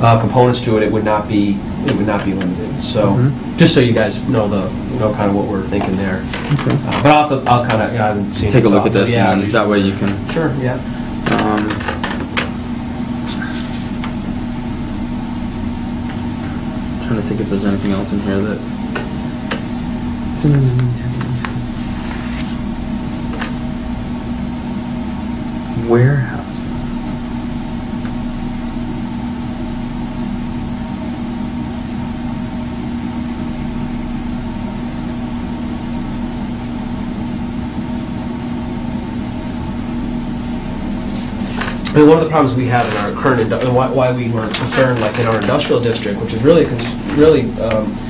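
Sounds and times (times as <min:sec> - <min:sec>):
low droning hum: 0:00.0 - 0:48.0.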